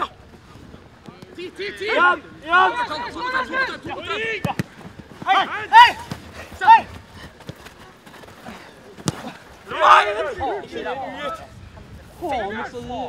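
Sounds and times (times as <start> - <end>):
players shouting: 1.0 - 11.6
ball being kicked: 4.4 - 5.3, 9.0 - 9.4.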